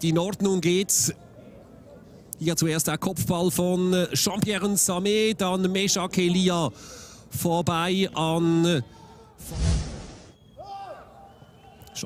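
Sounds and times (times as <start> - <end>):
football pitch ambience: 0.0 - 12.0
whooshing transition effect: 9.4 - 10.3.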